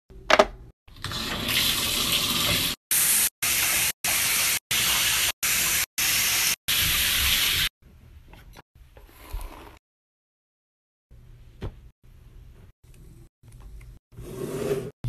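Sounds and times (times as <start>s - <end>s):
shower water running: 1.0s - 7.7s.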